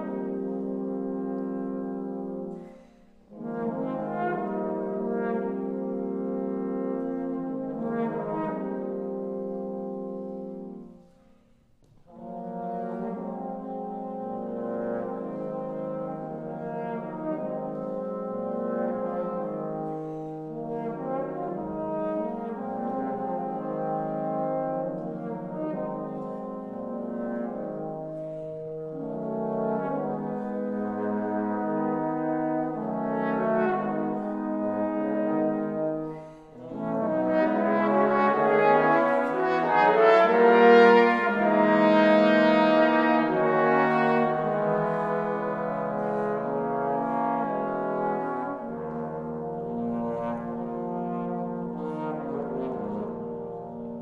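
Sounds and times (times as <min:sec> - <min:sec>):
trombone quartet playing chords: 0:00.0 - 0:11.0, 0:12.0 - 0:54.0.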